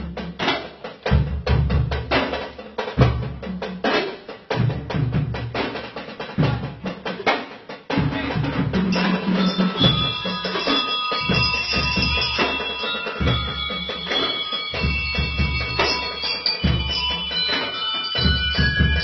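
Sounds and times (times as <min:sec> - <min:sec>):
marching drums: 0:00.0 - 0:19.0
bell lyres ringing: 0:08.9 - 0:19.0.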